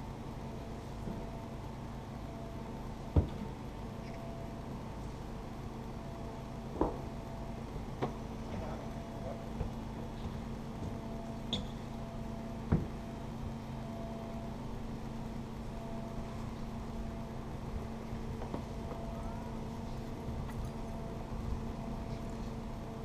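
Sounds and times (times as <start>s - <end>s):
low machine hum: 0.0s - 23.0s
thin whine: 10.9s - 23.0s.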